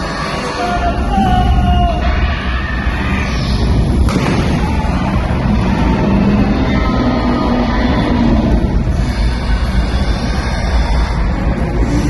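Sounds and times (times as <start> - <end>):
low rumbling sound effects: 0.0 - 12.0
music: 0.0 - 12.0.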